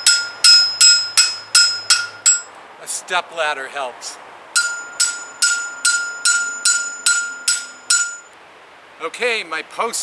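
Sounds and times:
hammer ringing on steel post: 0.0 - 2.5, 4.6 - 8.3.

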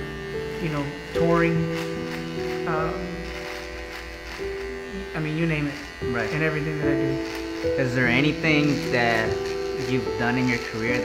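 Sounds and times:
electric hair trimmer buzzing: 0.0 - 11.0.

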